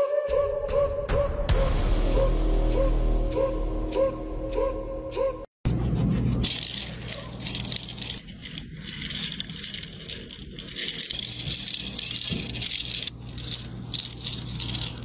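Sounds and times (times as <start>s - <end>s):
desk cleaner wheels rattling: 6.5s - 15.0s.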